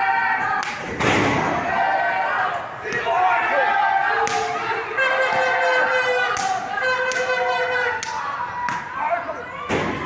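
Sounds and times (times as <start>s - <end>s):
voices shouting: 1.4s - 10.0s.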